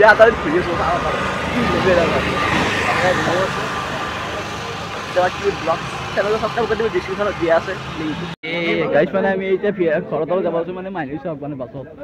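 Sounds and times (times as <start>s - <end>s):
vehicle passing: 0.0s - 8.4s
people talking: 0.0s - 12.0s.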